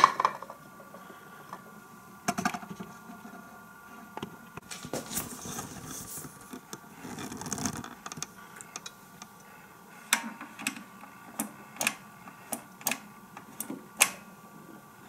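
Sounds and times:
plastic rustling scrape: 4.7s - 8.0s
sharp plastic clicks: 10.1s - 14.2s.

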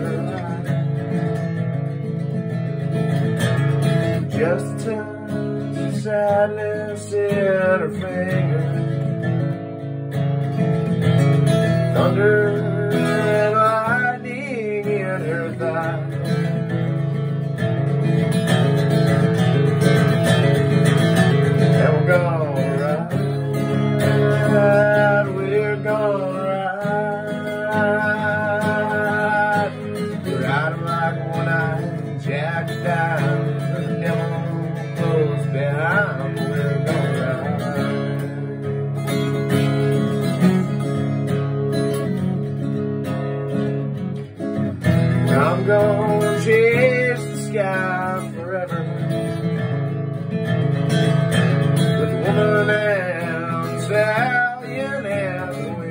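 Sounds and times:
acoustic guitar strummed chords: 0.0s - 55.9s.

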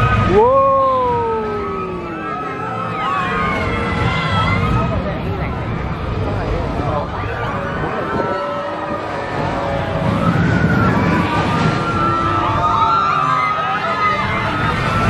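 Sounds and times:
coaster car rumbling on rails: 0.0s - 15.0s.

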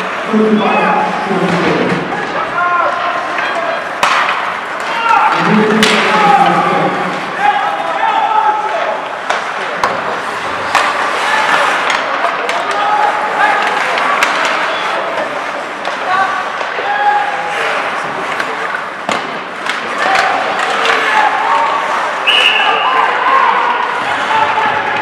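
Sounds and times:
players shouting: 0.0s - 25.0s
skates scraping ice: 0.0s - 25.0s
sticks clacking on puck: 3.2s - 6.6s, 8.7s - 22.0s.

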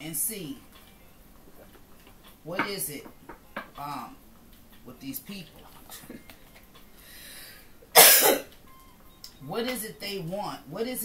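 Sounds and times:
woman coughing: 7.9s - 8.5s.

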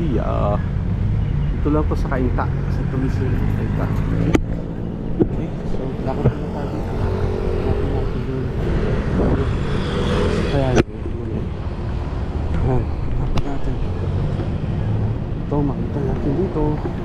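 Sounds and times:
road noise: 0.0s - 17.0s
vehicle engine running: 1.1s - 9.7s.

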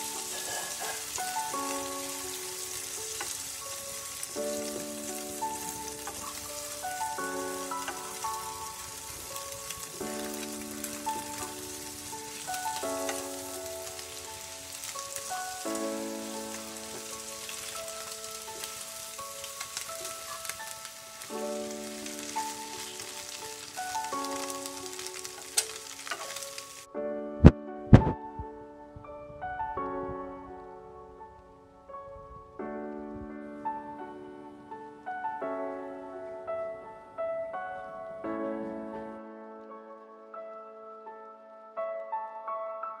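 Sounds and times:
food sizzling in a frying pan: 0.0s - 26.9s
background music of sustained chords: 0.0s - 43.0s
faint crackle: 0.0s - 43.0s.

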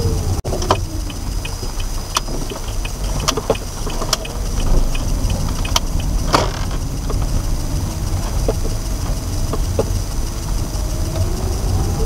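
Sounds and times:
road and engine rumble: 0.0s - 12.0s
sharp clicks in car cabin: 0.5s - 7.5s, 8.1s - 10.0s.

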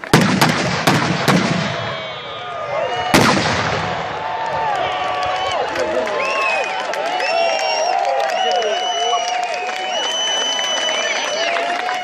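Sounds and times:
fireworks bangs: 0.0s - 2.2s, 3.0s - 4.5s
crowd whooping: 1.6s - 12.0s.

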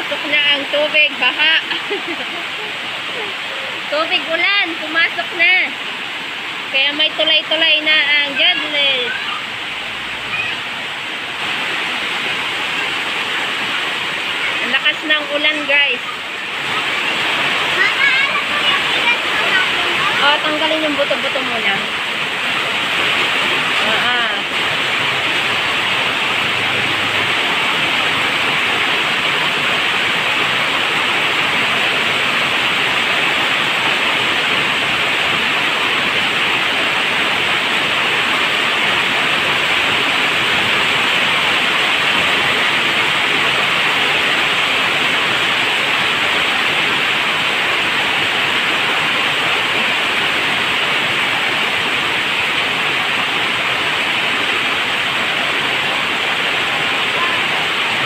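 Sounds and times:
heavy rain on leaves: 0.0s - 58.0s.

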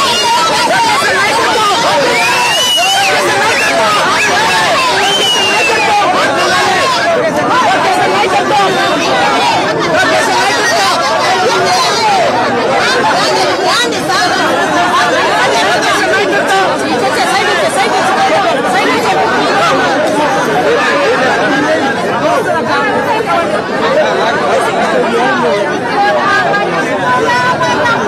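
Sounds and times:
dense crowd chatter: 0.0s - 28.0s.

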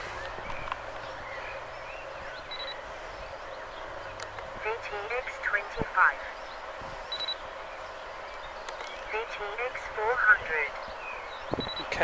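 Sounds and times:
faint bird chirps: 0.1s - 4.2s, 6.2s - 9.4s, 10.7s - 12.0s.

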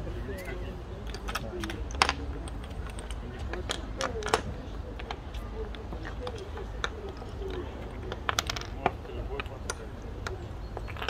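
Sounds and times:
chess pieces clacking on board: 1.0s - 11.0s.

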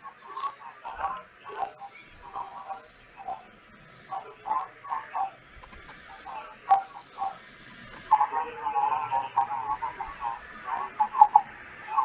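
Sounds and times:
muffled voice over video call: 0.0s - 3.4s, 4.1s - 5.3s, 6.1s - 7.4s, 8.0s - 12.0s.

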